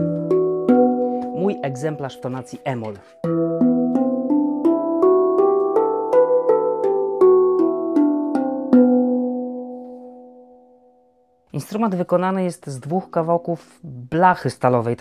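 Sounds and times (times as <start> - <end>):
handpan melody: 0.0 - 10.9.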